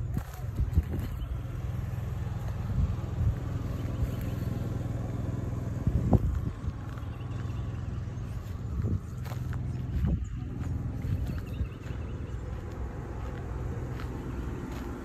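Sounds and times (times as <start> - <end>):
steady low rumble: 0.0 - 15.0
footsteps on grass: 6.0 - 15.0.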